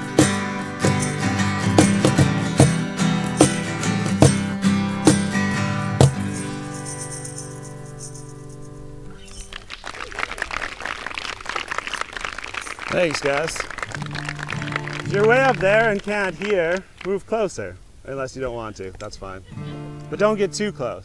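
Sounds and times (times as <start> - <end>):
acoustic guitars strumming: 0.0 - 9.7, 12.6 - 17.4, 19.4 - 21.0
audience clapping: 9.2 - 17.5.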